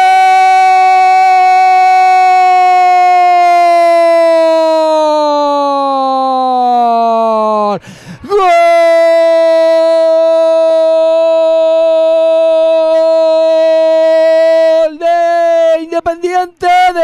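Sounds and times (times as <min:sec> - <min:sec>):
commentator shouting goal: 0:00.0 - 0:17.0.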